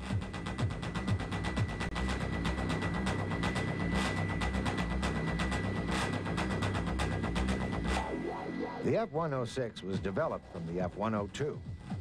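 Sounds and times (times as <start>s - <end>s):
music with pulsing beat and bass: 0.0s - 8.9s, 9.8s - 12.0s.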